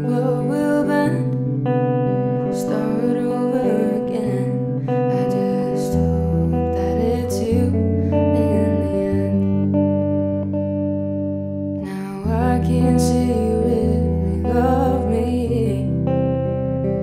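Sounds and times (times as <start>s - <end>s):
woman singing: 0.0s - 10.4s, 11.8s - 17.0s
guitar playing: 0.0s - 17.0s.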